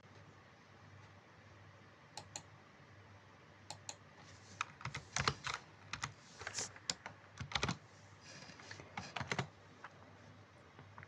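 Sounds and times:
computer keyboard keystrokes: 0:04.6 - 0:07.8, 0:09.0 - 0:09.5.

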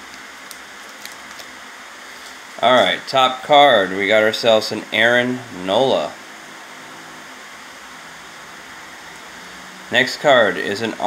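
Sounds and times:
faint hum: 0:00.0 - 0:11.0
room hiss: 0:00.0 - 0:11.0.

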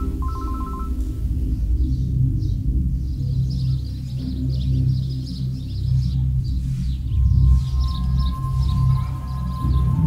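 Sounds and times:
thin steady high tone: 0:00.0 - 0:01.1, 0:07.2 - 0:10.0
low sustained drone: 0:00.0 - 0:10.0.

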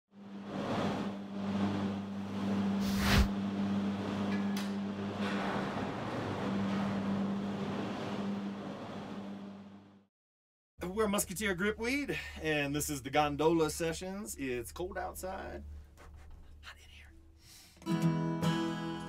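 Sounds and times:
steady mechanical hum: 0:00.2 - 0:10.0, 0:10.8 - 0:17.3.

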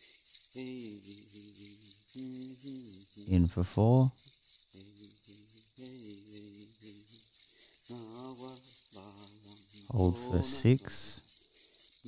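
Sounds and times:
shaker rattle: 0:00.0 - 0:12.0.

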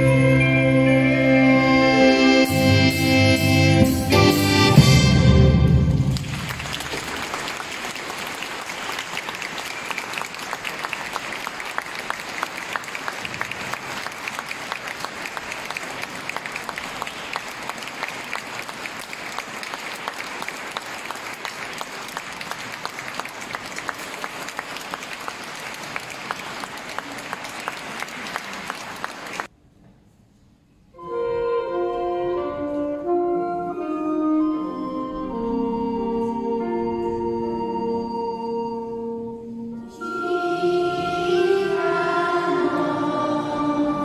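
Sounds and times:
music: 0:00.0 - 0:06.4, 0:30.9 - 0:44.0
audience applauding: 0:06.0 - 0:29.5.

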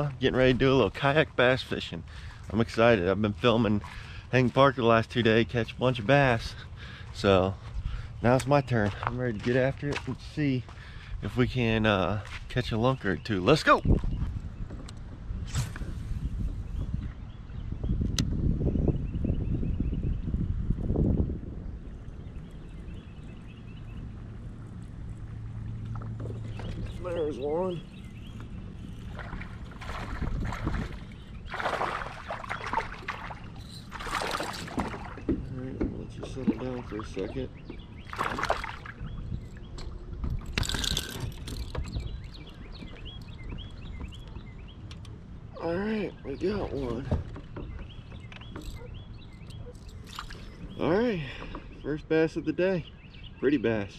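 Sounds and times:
fishing rod cast: 0:28.9 - 0:35.2.

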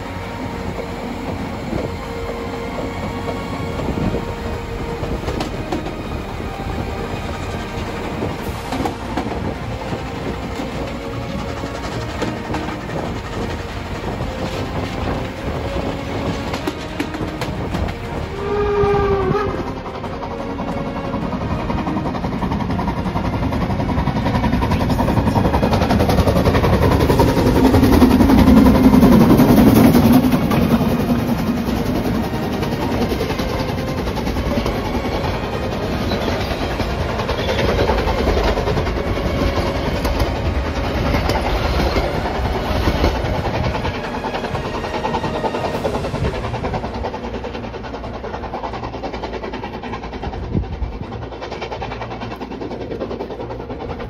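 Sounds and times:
carriages rolling past: 0:00.0 - 0:54.0
steam train passing: 0:00.0 - 0:54.0.

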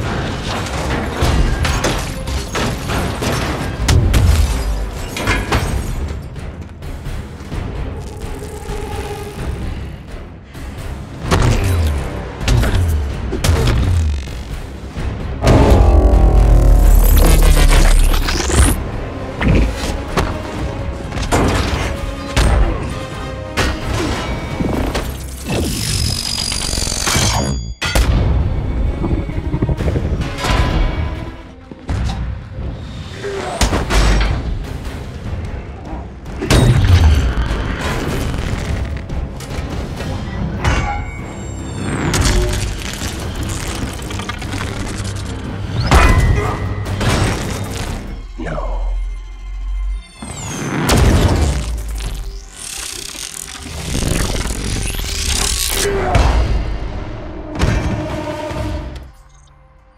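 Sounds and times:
dramatic music: 0:00.0 - 0:59.9
shattering sound effects: 0:15.5 - 0:18.8
deep rumble: 0:28.4 - 0:31.4
dense crackling: 0:50.9 - 0:55.8.

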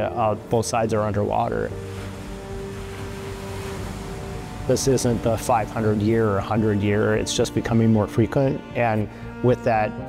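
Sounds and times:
surf: 0:00.0 - 0:08.8
sustained background music note: 0:00.0 - 0:10.0
storm wind: 0:01.7 - 0:06.9.

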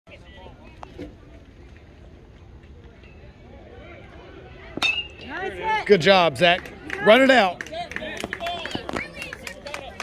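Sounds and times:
metal bat hitting ball: 0:04.8 - 0:05.2.

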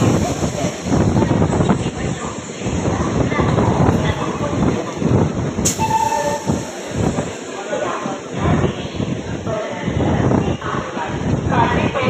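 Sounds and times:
train rumbling on track: 0:00.0 - 0:12.0
two-note train horn: 0:05.7 - 0:06.6.

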